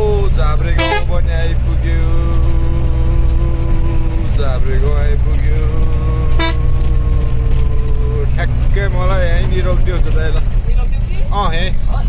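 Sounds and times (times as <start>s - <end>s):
vehicle engine and road rumble: 0.0s - 12.0s
person singing long notes: 1.0s - 8.4s.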